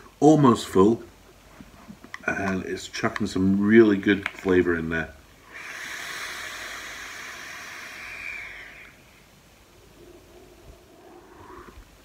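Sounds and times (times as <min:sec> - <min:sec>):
airy hiss of vape draw: 0:05.4 - 0:09.2, 0:09.9 - 0:12.0
person exhaling vapour: 0:05.5 - 0:09.0, 0:09.9 - 0:12.0.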